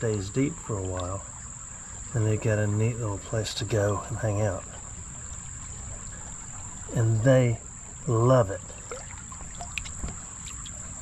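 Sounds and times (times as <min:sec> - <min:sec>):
creek water trickling: 0:00.0 - 0:11.0.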